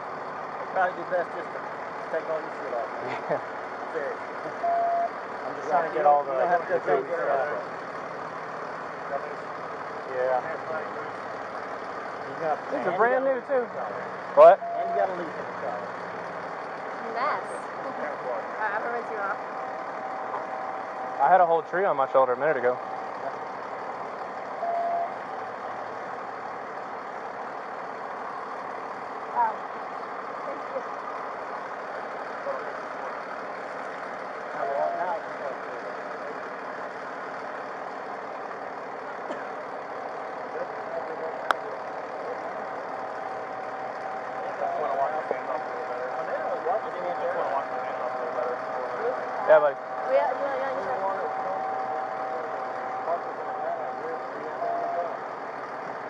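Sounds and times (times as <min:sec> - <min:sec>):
faint voices: 0:00.0 - 0:56.0
vehicle engine idling: 0:00.0 - 0:56.0.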